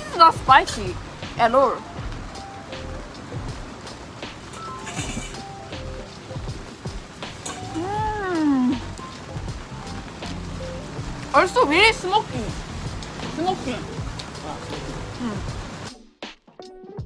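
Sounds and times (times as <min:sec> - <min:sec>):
background music: 0:00.0 - 0:17.0
person humming while chewing: 0:15.0 - 0:15.7.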